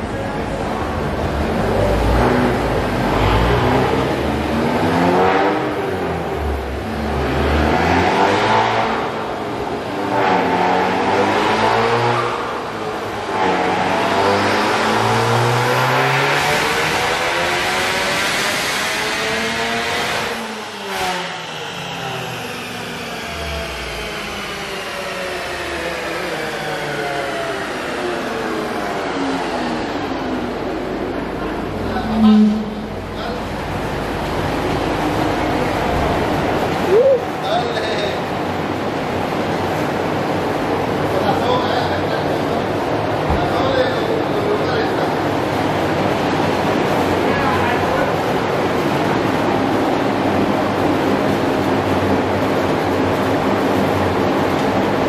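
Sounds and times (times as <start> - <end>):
car engine revving at full throttle: 0.0 - 55.0.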